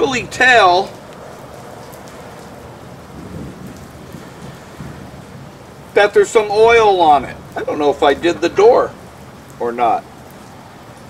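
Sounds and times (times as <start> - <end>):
rain hissing: 0.0 - 11.0
low rumbling thunder: 2.6 - 9.4.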